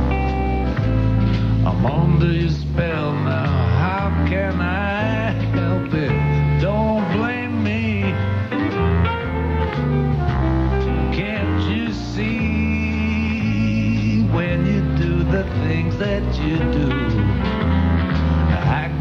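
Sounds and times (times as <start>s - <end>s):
live jazz band playing: 0.0s - 19.0s
walking bass line: 0.0s - 19.0s.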